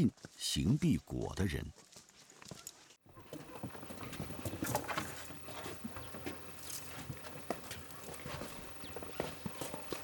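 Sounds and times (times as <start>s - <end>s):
footsteps on wooden boardwalk: 0.0s - 0.8s, 1.7s - 10.0s.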